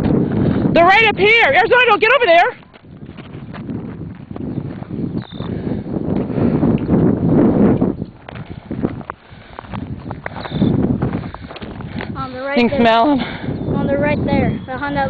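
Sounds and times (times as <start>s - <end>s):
footsteps on gravel: 0.0s - 12.9s.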